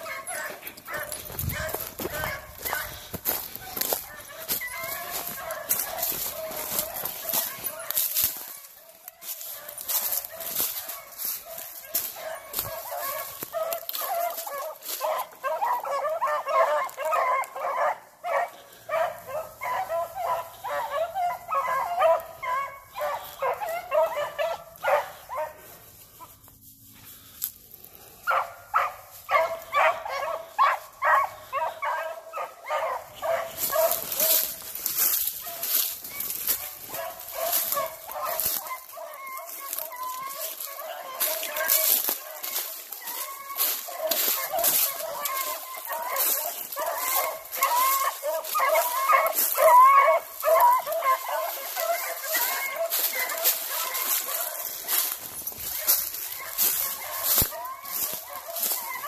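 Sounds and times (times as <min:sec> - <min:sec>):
dog barking: 0:00.0 - 0:26.3, 0:28.0 - 0:59.0
leaves and brush rustling: 0:00.0 - 0:59.0.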